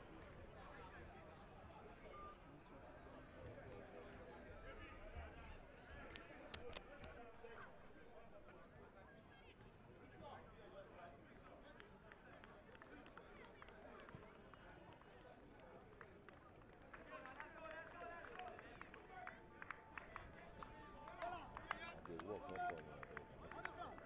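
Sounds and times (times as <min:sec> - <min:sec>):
sharp clicks: 0:06.5 - 0:07.2.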